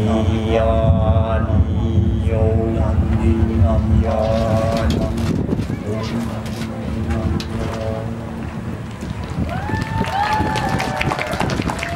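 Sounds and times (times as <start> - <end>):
low-pitched thumping: 0.0 - 9.5.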